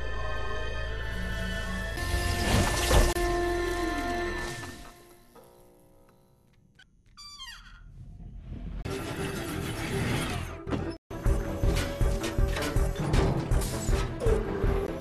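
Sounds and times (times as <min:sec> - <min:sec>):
action music with pounding beats: 0:10.3 - 0:15.0.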